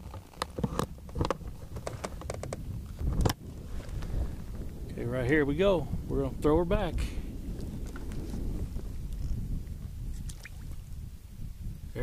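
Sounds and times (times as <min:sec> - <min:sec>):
wind rumbling on microphone: 0:00.0 - 0:12.0
water lapping against boat hull: 0:07.1 - 0:11.0.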